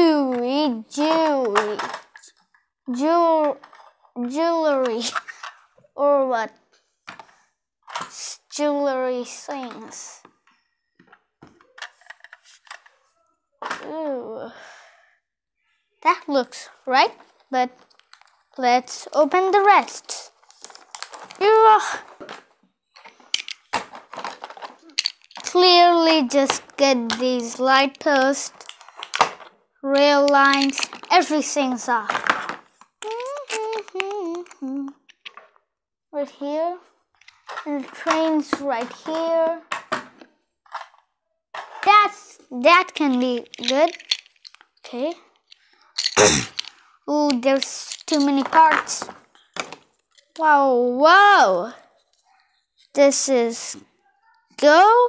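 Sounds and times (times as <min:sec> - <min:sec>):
child speaking: 0:00.0 - 0:02.0, 0:02.9 - 0:03.6, 0:04.2 - 0:05.2, 0:06.0 - 0:06.6, 0:08.1 - 0:10.3, 0:13.8 - 0:14.6, 0:15.7 - 0:17.8, 0:18.6 - 0:20.3, 0:21.4 - 0:22.1, 0:25.4 - 0:28.7, 0:29.8 - 0:32.2, 0:33.0 - 0:35.0, 0:36.2 - 0:36.8, 0:37.6 - 0:39.7, 0:41.8 - 0:44.0, 0:44.9 - 0:45.2, 0:47.1 - 0:49.1, 0:50.4 - 0:51.8, 0:53.0 - 0:55.0
plastic toy train carriages clicking: 0:00.2 - 0:05.6, 0:11.5 - 0:13.0, 0:17.8 - 0:35.5, 0:42.7 - 0:50.6.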